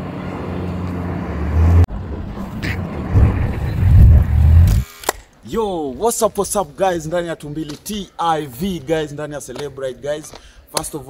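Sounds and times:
car engine passing by: 0:00.1 - 0:04.8.

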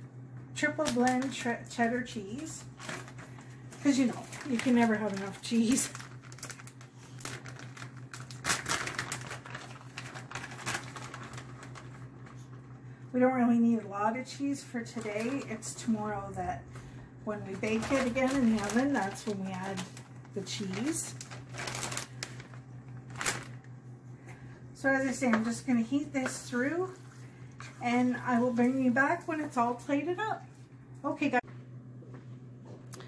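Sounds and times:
plastic bag crinkling: 0:00.8 - 0:12.8, 0:14.8 - 0:15.9, 0:17.4 - 0:23.8.

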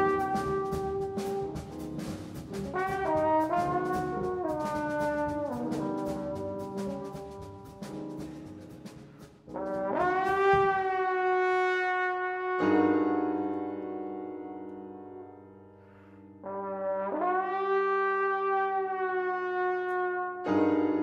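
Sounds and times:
trombone playing long notes: 0:00.0 - 0:08.2, 0:09.5 - 0:13.9, 0:16.4 - 0:21.0.

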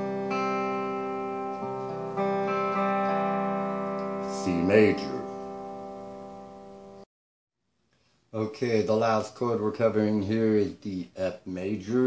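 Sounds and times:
electric guitar chord ringing: 0:00.0 - 0:07.1.

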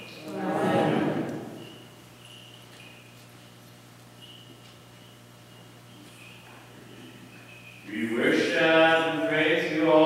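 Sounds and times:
man chanting: 0:07.9 - 0:10.0.

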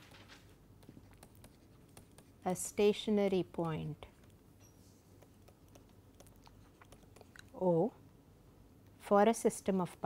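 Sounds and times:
stylus tapping on tablet screen: 0:00.8 - 0:02.3, 0:05.2 - 0:07.3.

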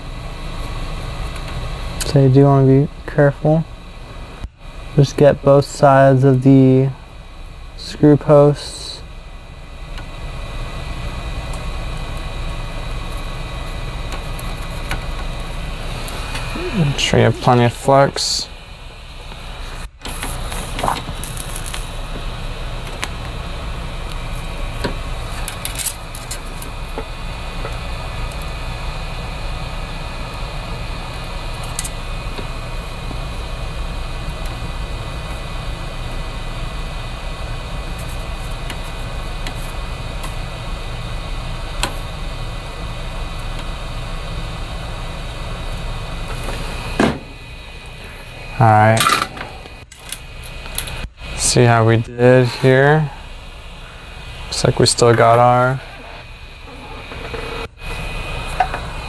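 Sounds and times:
fan whirring: 0:00.0 - 0:59.0.

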